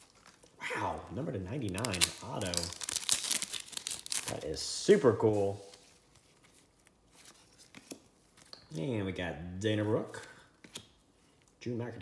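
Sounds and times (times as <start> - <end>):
trading cards being handled: 1.6 - 4.4, 5.1 - 8.8, 9.8 - 11.5.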